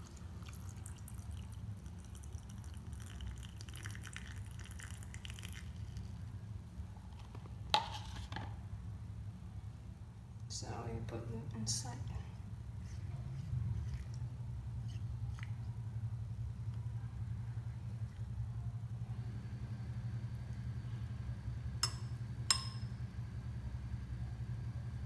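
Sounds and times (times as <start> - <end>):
steady low hum: 0.0 - 25.0
spoon clinking against glass: 21.8 - 22.9
spoon stirring in glass of water: 21.8 - 22.9.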